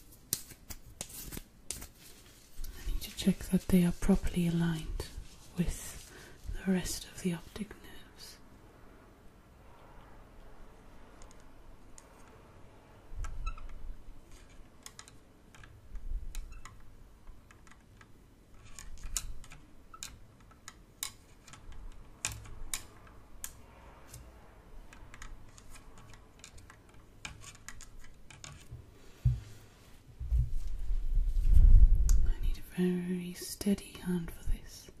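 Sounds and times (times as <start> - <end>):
small clicks and taps: 14.4 - 24.2
rumbling brush against microphone: 30.2 - 32.5.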